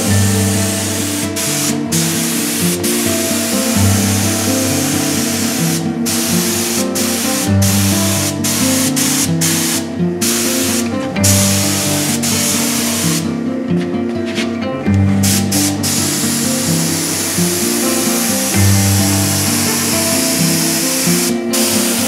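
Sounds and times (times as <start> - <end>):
air spray gun hissing: 0.0 - 13.3, 15.0 - 22.0
background music: 0.0 - 22.0.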